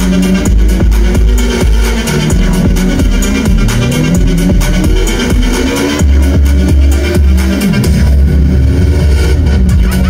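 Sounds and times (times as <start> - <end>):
techno music through loud speakers: 0.0 - 10.0.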